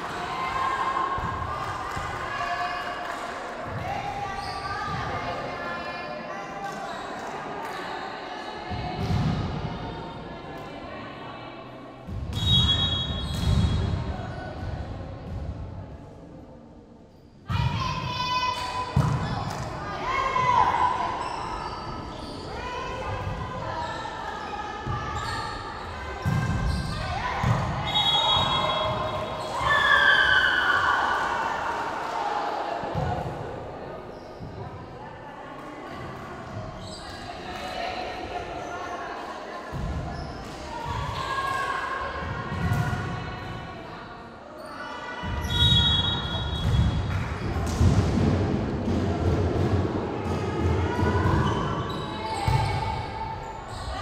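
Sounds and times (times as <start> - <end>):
players calling and shouting: 17.5 - 34.8, 48.9 - 54.0.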